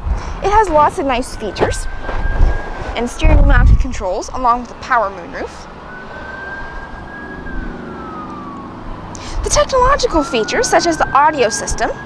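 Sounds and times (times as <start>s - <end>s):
low steady rumble: 0.0s - 12.0s
siren wailing: 0.3s - 12.0s.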